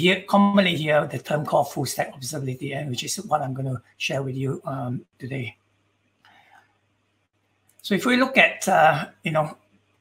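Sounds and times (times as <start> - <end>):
man speaking: 0.0 - 5.7, 7.8 - 9.7.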